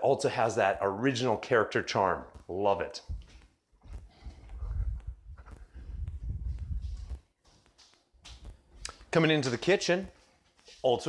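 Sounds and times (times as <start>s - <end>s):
footsteps on hardwood floor: 2.2s - 11.0s.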